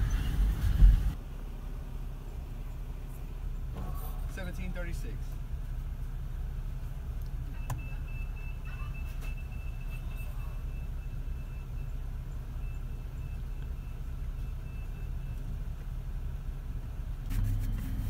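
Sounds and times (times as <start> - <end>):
car engine idling: 0.0 - 18.0
faint high-pitched beep: 7.6 - 15.5.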